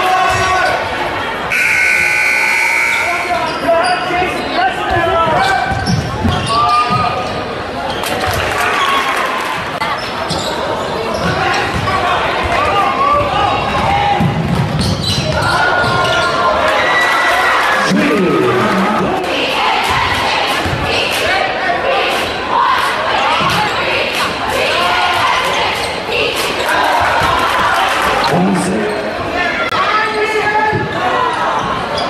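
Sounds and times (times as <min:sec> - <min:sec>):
people shouting and talking: 0:00.0 - 0:32.0
high whistle-like tone: 0:01.5 - 0:03.3.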